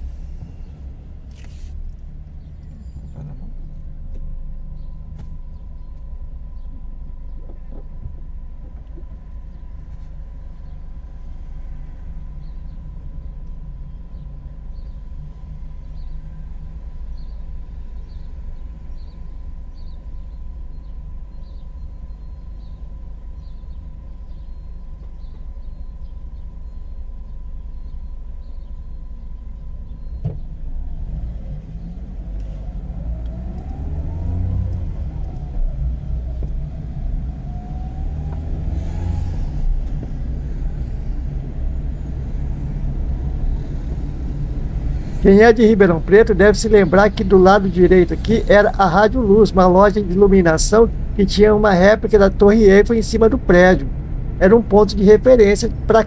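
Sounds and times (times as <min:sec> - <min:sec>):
car engine and road rumble: 0:00.0 - 0:56.0
engine note rising and falling: 0:30.6 - 0:56.0.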